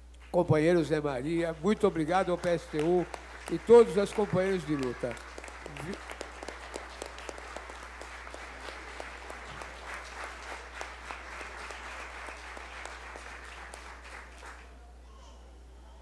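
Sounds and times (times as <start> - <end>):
low electrical hum: 0.0 - 16.0
audience applauding: 1.3 - 14.8.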